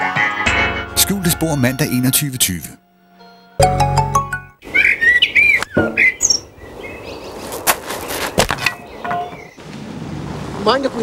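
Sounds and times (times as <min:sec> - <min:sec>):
birds chirping: 0:04.6 - 0:09.7.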